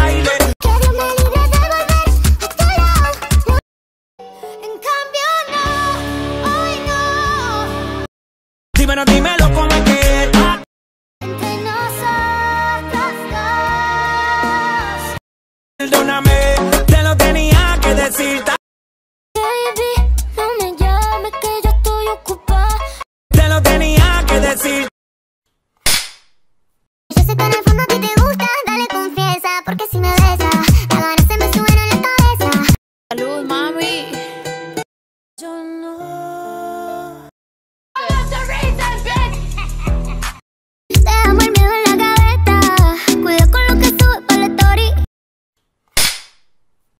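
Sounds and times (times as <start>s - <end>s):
music: 0.0s - 3.6s, 4.2s - 8.1s, 8.8s - 15.2s, 15.8s - 18.6s, 19.4s - 24.9s, 27.1s - 34.9s, 38.0s - 45.1s
clapperboard snapping shut: 46.0s - 46.4s.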